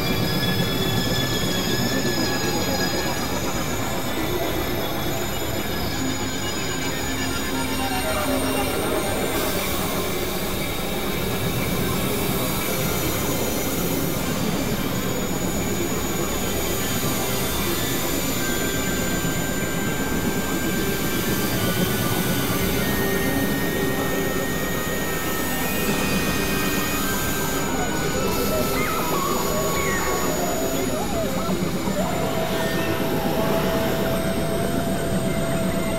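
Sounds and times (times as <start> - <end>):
thin sustained high tones: 0.0 - 35.9.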